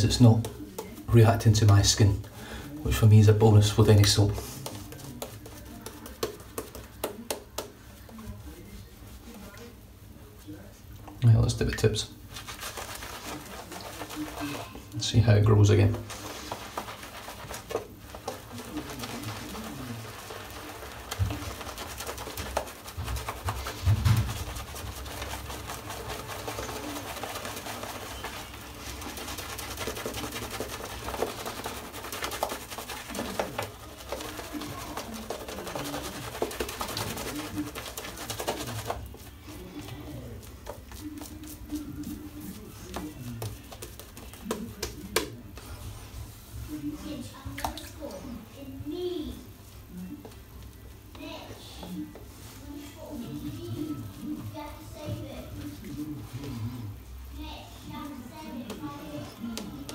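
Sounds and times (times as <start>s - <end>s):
shaving brush squishing lather: 0.0s - 59.9s.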